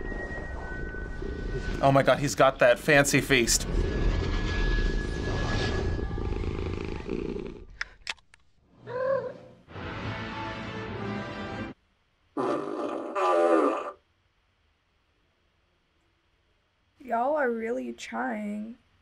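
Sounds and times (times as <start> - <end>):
big cat growling and roaring: 6.1 - 7.7, 12.4 - 14.0
movie-style music: 9.7 - 11.8.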